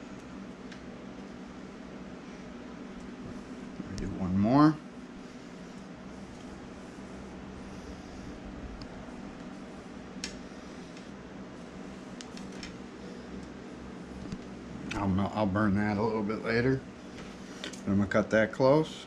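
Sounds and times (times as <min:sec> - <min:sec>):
fan humming: 0:00.0 - 0:19.0.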